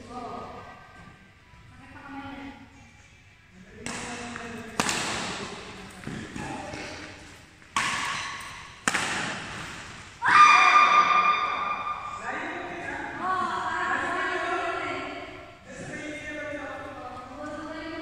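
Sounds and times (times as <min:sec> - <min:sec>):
racket hitting shuttlecock: 0:03.8 - 0:10.1.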